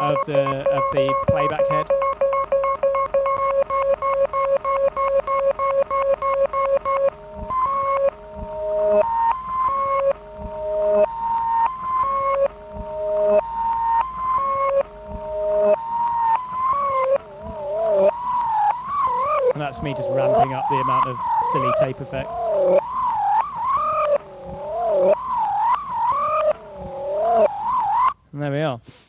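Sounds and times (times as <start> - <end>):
music box notes through glitch delay: 0.0 - 28.2.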